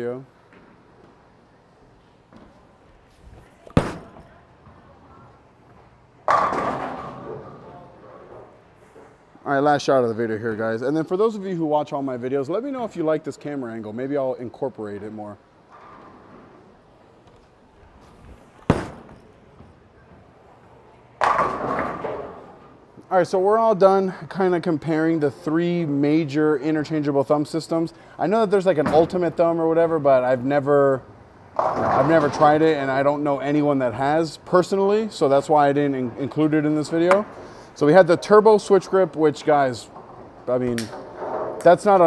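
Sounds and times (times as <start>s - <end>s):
bowling alley room noise: 0.0s - 42.0s
bowling pins crashing and rattling: 6.3s - 7.6s, 21.2s - 22.6s, 31.5s - 32.6s.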